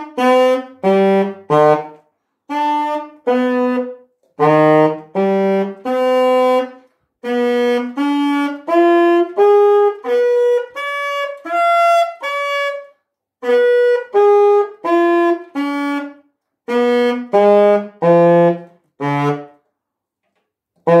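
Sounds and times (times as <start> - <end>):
alto saxophone notes: 0.0 - 19.6, 20.8 - 21.0.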